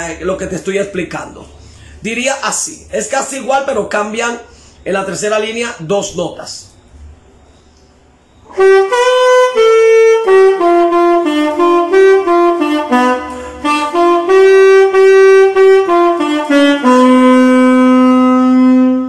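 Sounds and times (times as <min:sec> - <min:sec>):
alto saxophone melody: 0:08.5 - 0:19.0.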